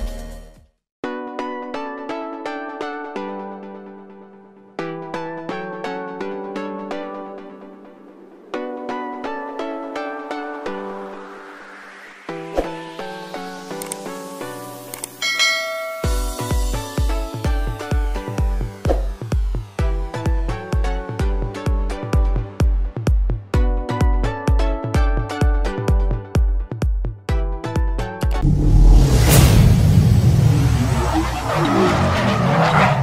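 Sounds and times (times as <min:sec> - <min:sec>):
music: 0:00.0 - 0:33.0
bell-like notification chime: 0:15.2 - 0:16.6
tyre screech: 0:30.5 - 0:33.0.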